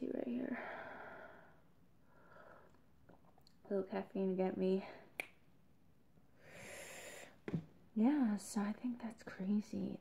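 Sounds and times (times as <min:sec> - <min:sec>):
soft breath drawn in: 0:06.4 - 0:07.4.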